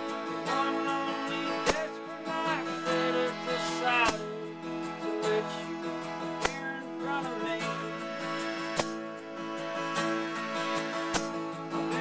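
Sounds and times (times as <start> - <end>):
live band playing: 0.0 - 12.0
tambourine hits: 0.0 - 12.0.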